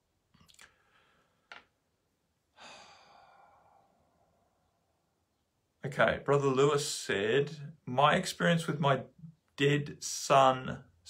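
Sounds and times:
man sighing: 2.5s - 4.2s.

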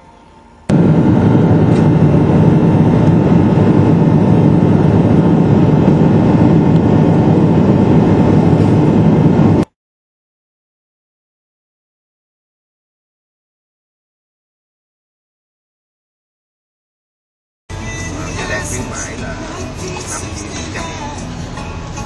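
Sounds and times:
airliner cabin engine noise: 0.7s - 9.7s.

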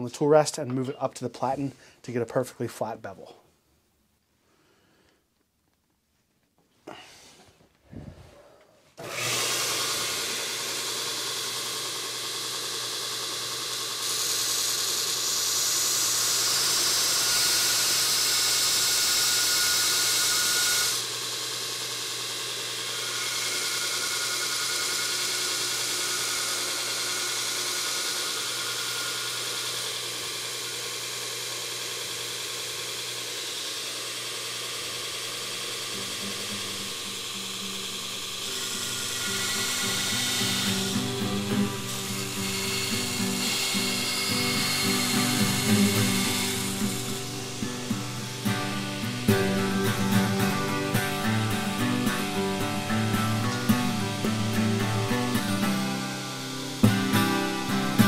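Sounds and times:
belt grinder grinding steel: 9.0s - 58.0s
background music: 44.4s - 58.0s.

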